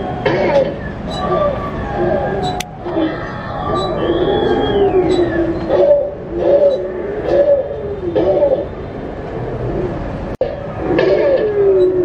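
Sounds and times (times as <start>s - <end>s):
dinosaur moaning bellows: 9.6s - 12.0s.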